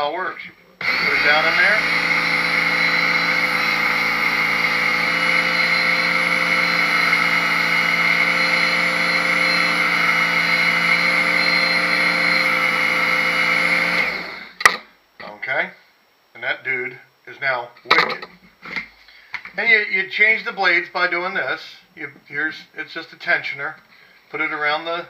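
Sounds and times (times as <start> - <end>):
electric sharpener running: 0.8 - 14.6
motor winding down: 0.8 - 14.6.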